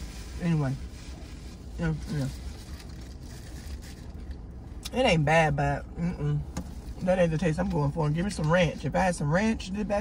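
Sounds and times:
paper wrappers rustling: 0.0 - 4.4
low rumble in vehicle cabin: 0.0 - 10.0.

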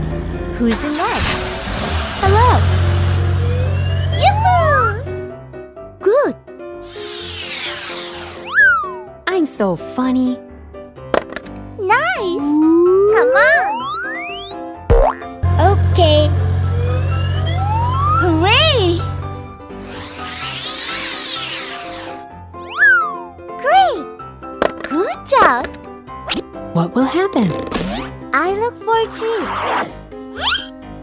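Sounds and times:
children's background music: 2.2 - 31.0
rising and falling tone: 2.9 - 5.0, 6.8 - 9.2, 12.4 - 15.1, 16.3 - 23.2
falling whistle glide: 3.4 - 4.4, 6.9 - 9.1, 16.7 - 18.2, 19.8 - 23.2
rushing whoosh: 6.8 - 9.0.

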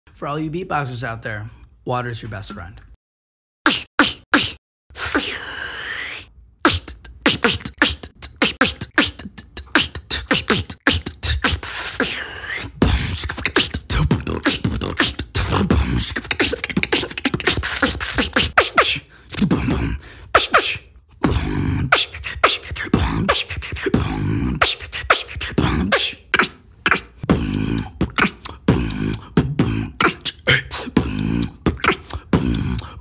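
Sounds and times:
beatbox snare hits: 3.7 - 4.6, 6.6 - 11.8, 12.8 - 19.6
beatboxing: 3.7 - 33.0
hissing mouth sweep: 3.7 - 33.0.

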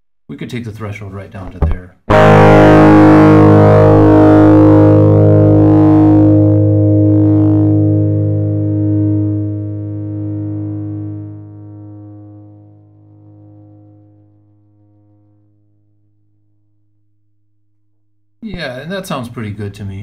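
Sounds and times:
distorted electric guitar ringing: 1.6 - 15.3.

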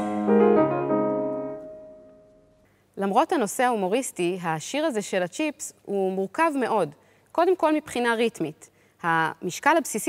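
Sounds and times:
piano chord ringing: 0.0 - 2.6.

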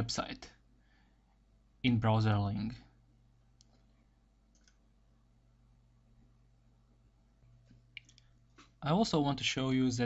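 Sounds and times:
computer mouse clicks: 3.6 - 4.8, 7.6 - 8.8.

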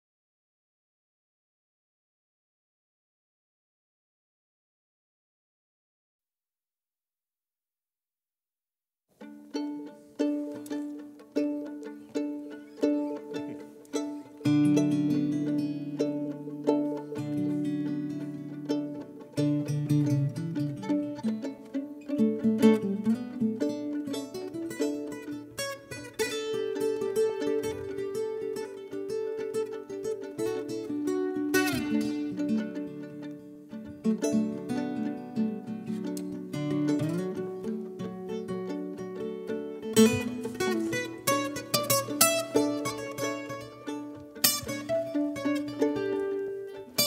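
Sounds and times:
guitar and violin duet: 9.2 - 47.0.

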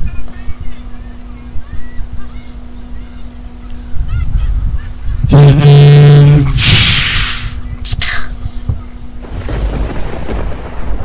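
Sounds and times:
loud steady honk: 5.3 - 6.6
brief hiss: 6.6 - 7.6.

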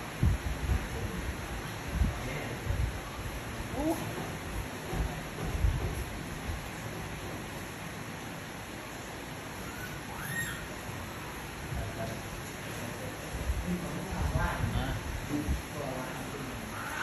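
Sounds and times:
soft low knocks: 3.8 - 7.6
baby monkey squeak: 9.7 - 10.7.

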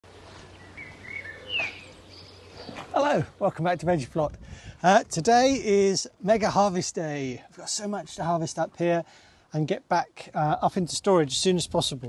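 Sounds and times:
bird chirping: 0.2 - 3.0.

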